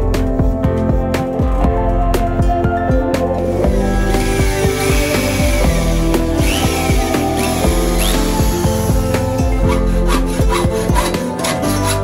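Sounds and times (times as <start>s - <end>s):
background music: 0.0s - 12.0s
hacksaw sawing: 3.7s - 12.0s.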